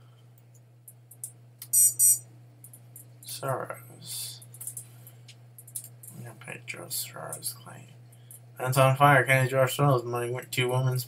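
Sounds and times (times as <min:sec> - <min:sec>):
steady low hum: 0:00.0 - 0:11.0
high-pitched electronic beep: 0:01.7 - 0:02.2
faint keyboard clicks: 0:04.5 - 0:06.2.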